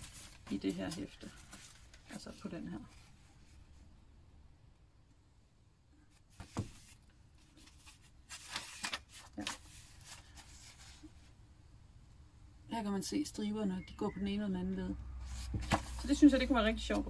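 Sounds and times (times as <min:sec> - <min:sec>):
magazine pages rustling: 0:00.0 - 0:03.6, 0:06.2 - 0:11.4, 0:15.3 - 0:16.5.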